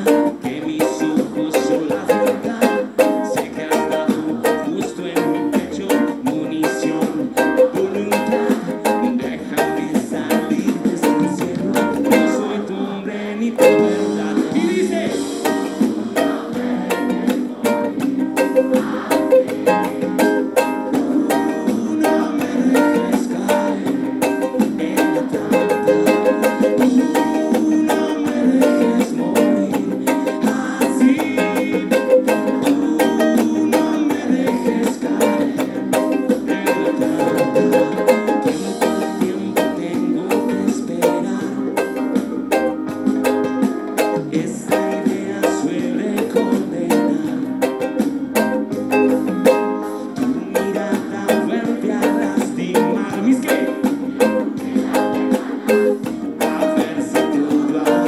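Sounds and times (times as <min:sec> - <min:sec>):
ukulele strumming: 0:00.0 - 0:58.0.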